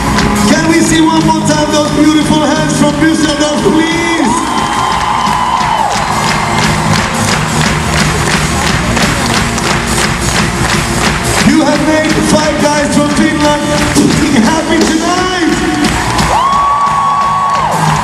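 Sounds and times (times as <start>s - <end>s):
crowd cheering and clapping: 0.0s - 18.0s
live rock band playing: 0.0s - 18.0s.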